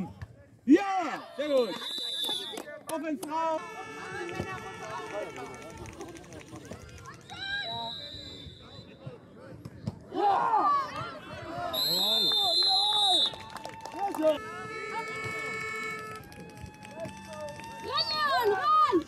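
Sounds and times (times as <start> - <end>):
people shouting and cheering: 0.0 - 19.0
shrill whistle blast: 7.5 - 8.9, 11.8 - 13.3.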